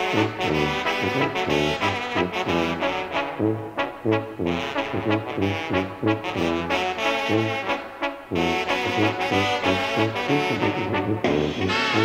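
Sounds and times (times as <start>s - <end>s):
brass wind band music: 0.0s - 12.0s.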